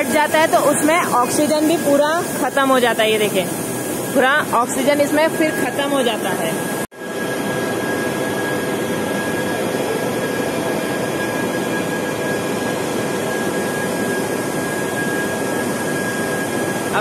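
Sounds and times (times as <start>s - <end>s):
high-pitched motor whine: 0.0s - 17.0s
machinery whirring: 0.0s - 17.0s.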